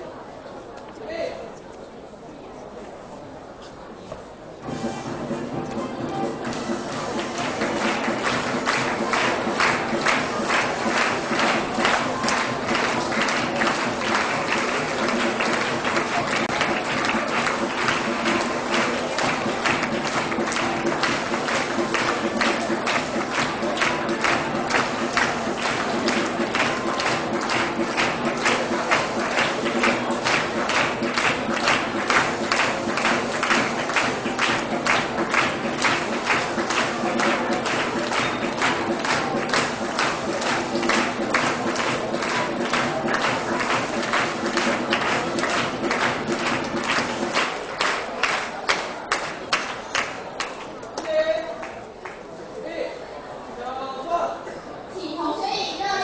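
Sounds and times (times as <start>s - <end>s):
music playing: 4.6s - 48.5s
audience clapping: 4.7s - 52.4s.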